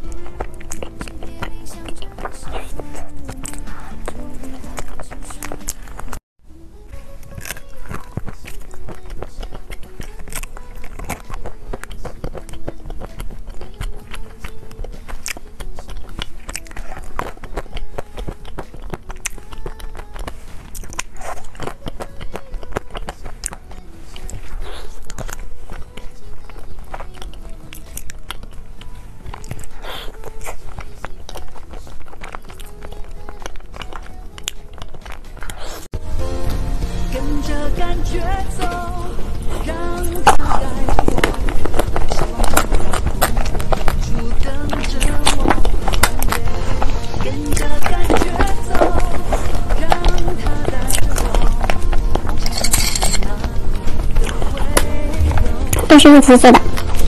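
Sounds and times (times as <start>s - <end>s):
crunching chocolate: 0.0s - 36.0s, 37.3s - 57.0s
background music simple melody: 0.0s - 57.0s.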